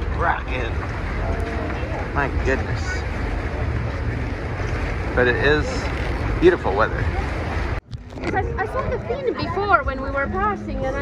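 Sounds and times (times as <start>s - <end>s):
boat rushing through choppy sea: 0.0s - 11.0s
low rumble: 0.0s - 11.0s.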